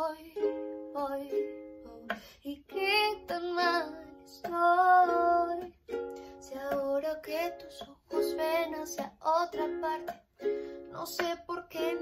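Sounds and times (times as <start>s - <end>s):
ukulele strumming chords: 0.0s - 12.0s
woman singing: 0.0s - 12.0s.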